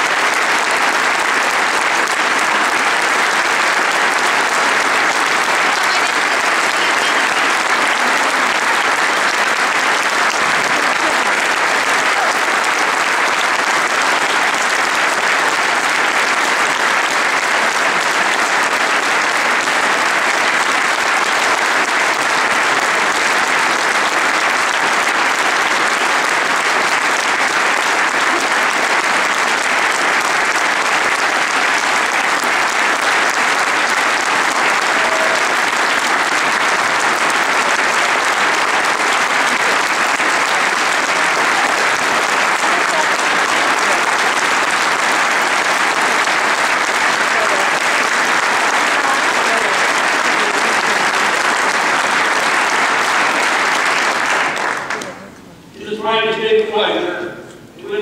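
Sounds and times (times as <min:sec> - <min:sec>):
audience applause: 0:00.0 - 0:57.0.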